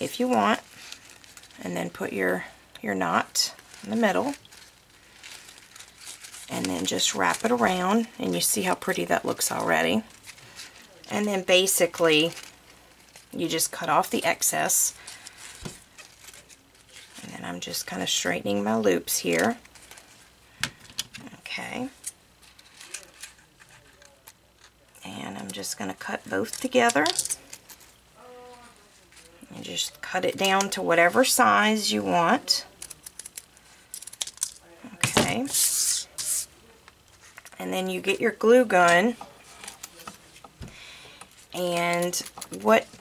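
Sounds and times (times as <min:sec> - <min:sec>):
faint handling sounds: 0:00.0 - 0:31.5, 0:32.6 - 0:37.6, 0:38.4 - 0:43.0
ribbon rustling: 0:00.0 - 0:31.6, 0:32.3 - 0:37.6, 0:38.4 - 0:43.0.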